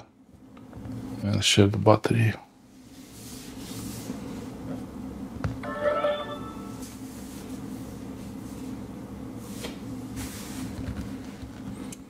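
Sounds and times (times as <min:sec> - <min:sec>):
electronic charging chime: 0:05.6 - 0:06.8.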